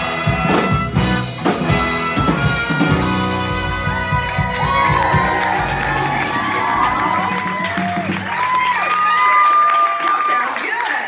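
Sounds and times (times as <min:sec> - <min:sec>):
live band final chord: 0:00.0 - 0:08.7
audience cheering and whooping: 0:03.4 - 0:11.0.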